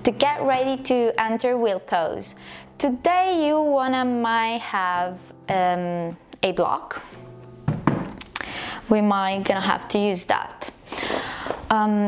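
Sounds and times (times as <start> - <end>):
cork block knocking: 7.7 - 8.3.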